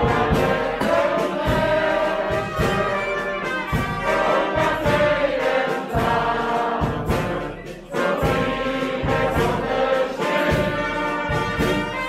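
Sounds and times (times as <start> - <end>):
bass drum beat: 0.0 - 12.0
brass band playing: 0.0 - 12.0
cymbals: 0.0 - 12.0.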